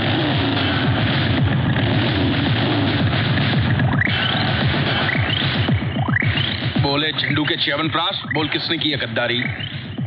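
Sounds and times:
motorcycle engine revving: 0:00.0 - 0:06.8.

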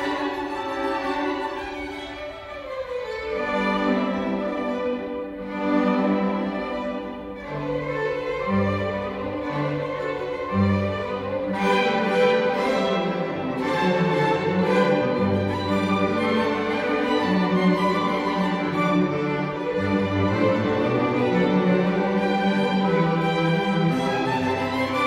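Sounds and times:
cellos and double basses: 0:00.0 - 0:25.0
violins: 0:00.0 - 0:25.0.

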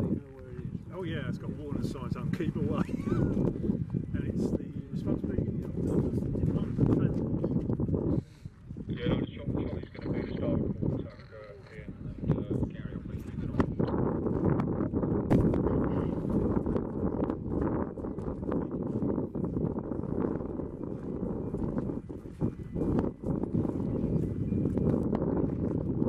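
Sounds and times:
wind buffeting microphone: 0:00.0 - 0:26.0.

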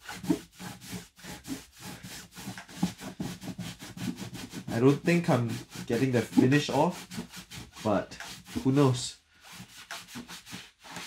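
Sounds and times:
cloth scrubbing guitar top: 0:00.0 - 0:11.0.

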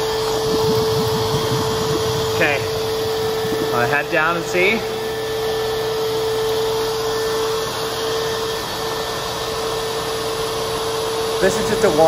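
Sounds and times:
air compressor humming and hissing: 0:00.0 - 0:12.0.

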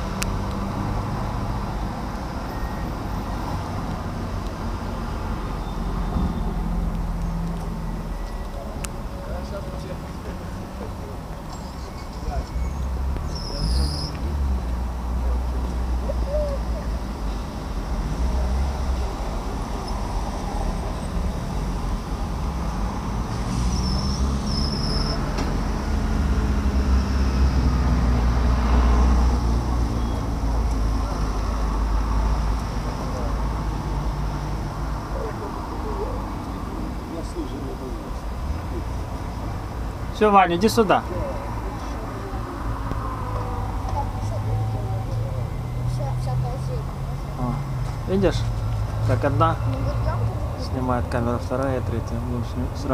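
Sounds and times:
street traffic rumble: 0:00.0 - 0:52.9
vehicle passing: 0:12.2 - 0:52.9.

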